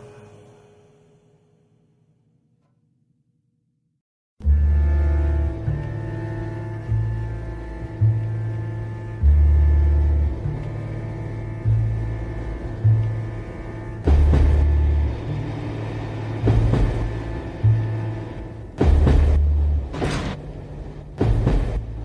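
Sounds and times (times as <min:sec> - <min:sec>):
held drone: 0:00.0 - 0:01.8, 0:04.4 - 0:22.0
deep bass notes: 0:04.4 - 0:22.0.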